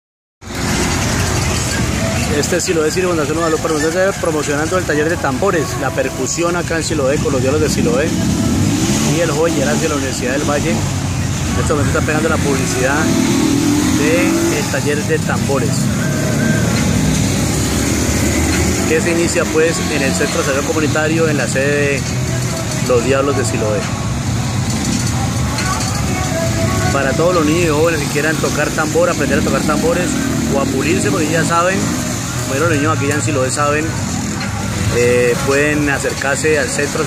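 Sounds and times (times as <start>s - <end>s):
vehicle engine rumbling: 0.4s - 37.0s
vehicle passing close by: 7.8s - 21.5s.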